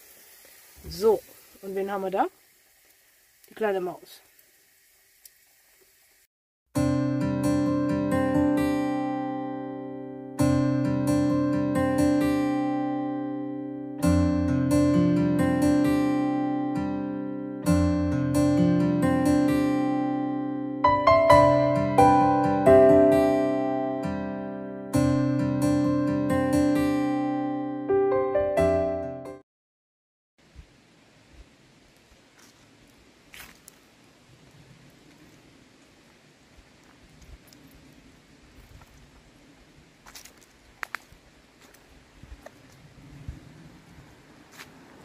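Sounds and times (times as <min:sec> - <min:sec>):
outdoor background noise: 0:00.0 - 0:06.3, 0:30.4 - 0:45.0
acoustic guitar chords strummed: 0:06.8 - 0:27.9
brief rustle or crunch: 0:33.3 - 0:33.9, 0:40.1 - 0:42.8.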